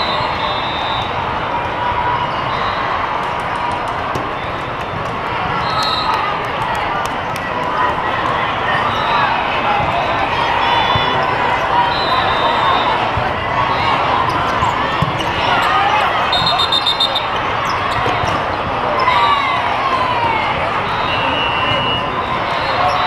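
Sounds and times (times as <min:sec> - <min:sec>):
referee whistle blasts: 0:00.0 - 0:01.2, 0:05.6 - 0:06.2, 0:16.2 - 0:17.4, 0:20.9 - 0:23.0
crowd chatter: 0:00.0 - 0:23.0
sneakers squeaking on court: 0:14.0 - 0:19.2.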